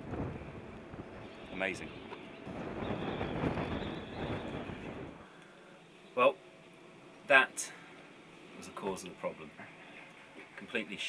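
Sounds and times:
wind buffeting microphone: 0.0s - 5.2s.

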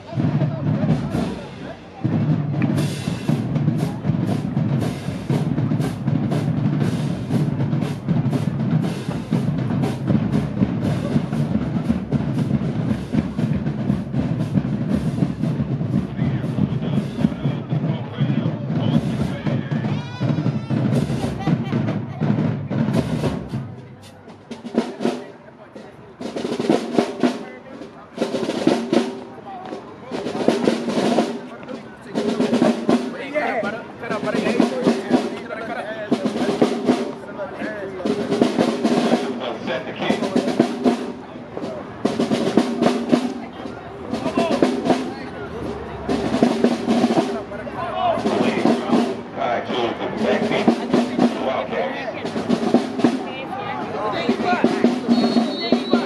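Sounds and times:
snare drum rolls: 0.0s - 56.0s.

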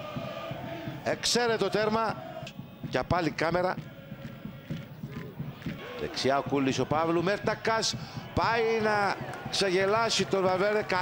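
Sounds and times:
faint crowd chanting: 0.0s - 11.0s.

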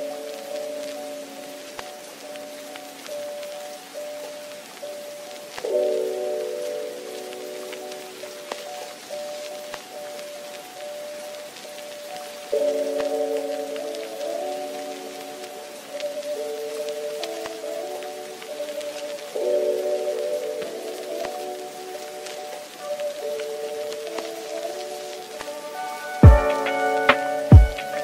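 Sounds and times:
steady hiss with crackles: 0.0s - 28.0s
sustained keyboard chords: 0.0s - 28.0s.

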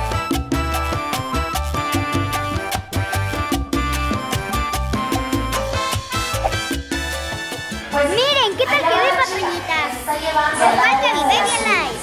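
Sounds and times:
children chattering and calling: 8.0s - 12.0s.

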